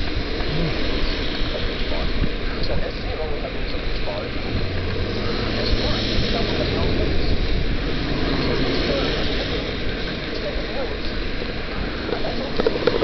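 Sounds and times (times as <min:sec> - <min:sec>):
low engine drone: 0:00.0 - 0:13.0
wind and tyre noise on wet road: 0:00.0 - 0:13.0.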